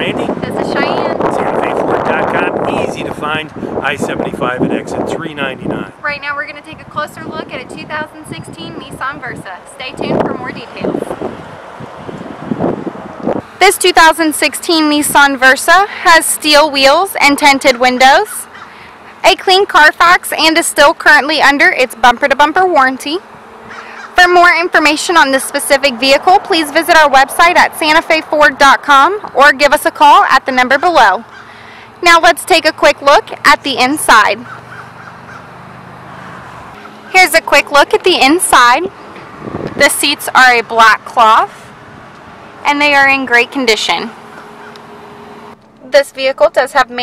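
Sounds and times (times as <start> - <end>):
wind blowing on microphone: 0.0 - 13.5, 38.2 - 42.1
faint bird calls: 18.0 - 19.2, 23.6 - 24.2, 30.8 - 32.0, 34.4 - 35.6.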